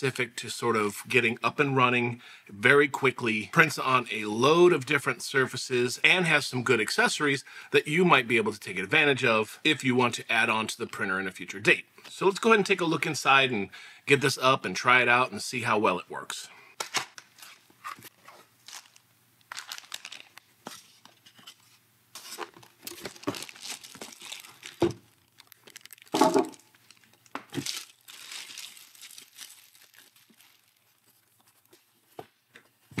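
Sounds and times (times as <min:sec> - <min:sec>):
plastic bag crinkling: 0:18.6 - 0:21.2, 0:22.2 - 0:32.0.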